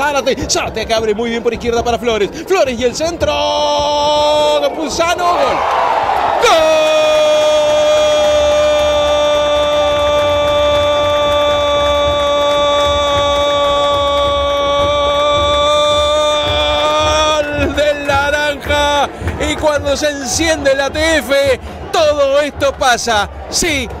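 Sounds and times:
fast excited speech: 0:00.0 - 0:05.6, 0:06.4 - 0:24.0.

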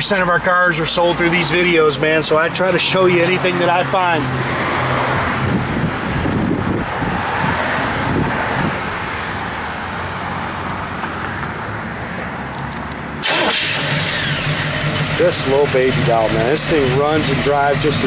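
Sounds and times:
car engine idling: 0:13.2 - 0:18.0.

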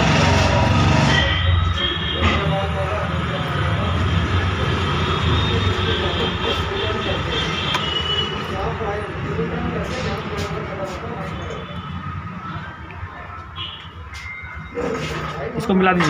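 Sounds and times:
traffic noise: 0:00.0 - 0:16.0
faint voices: 0:01.6 - 0:16.0.

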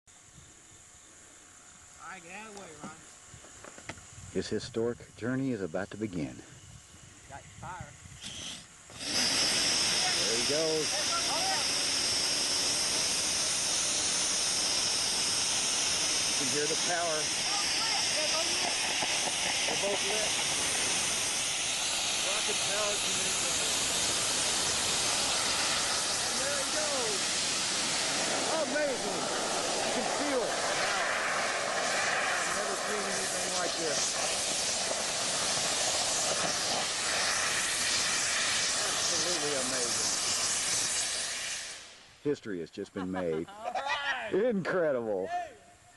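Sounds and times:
rocket motor hissing: 0:06.2 - 0:42.4
voices calling out: 0:16.4 - 0:20.6.

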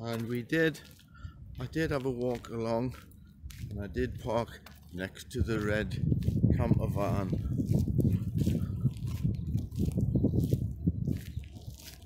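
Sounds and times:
footsteps crunching on wet gravel: 0:00.0 - 0:12.0
wind rumbling on microphone: 0:00.9 - 0:12.0.

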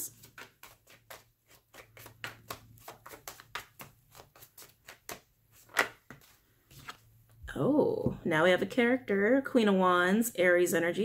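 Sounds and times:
cards being shuffled: 0:00.0 - 0:07.1.

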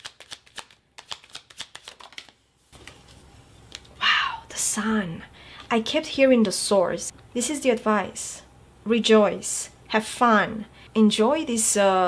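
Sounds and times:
cards being shuffled: 0:00.0 - 0:03.9.

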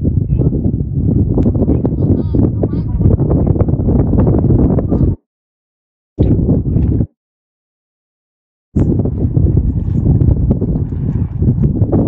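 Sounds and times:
wind buffeting microphone: 0:00.0 - 0:05.2, 0:06.2 - 0:07.1, 0:08.8 - 0:12.0.

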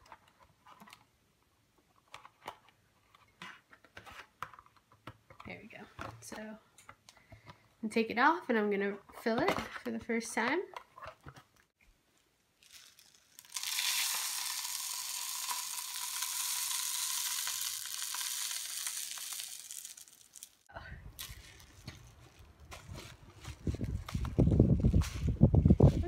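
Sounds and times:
birdseed pouring into bottle: 0:12.6 - 0:20.6.

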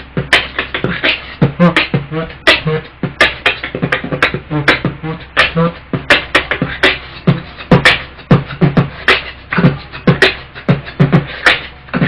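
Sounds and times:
beatboxing: 0:00.0 - 0:12.0.

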